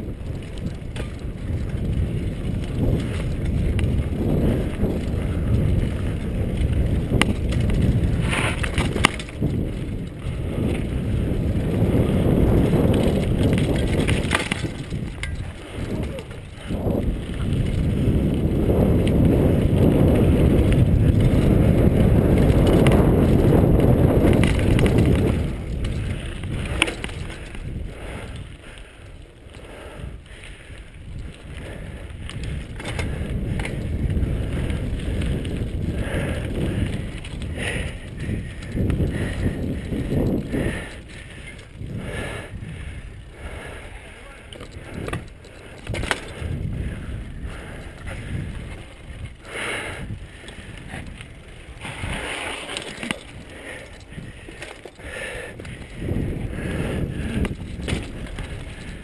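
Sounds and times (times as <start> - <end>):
bike rattling clicks and knocks: 0.0 - 59.0
wind on microphone: 0.0 - 59.0
tyres rumbling on dirt: 0.1 - 28.0.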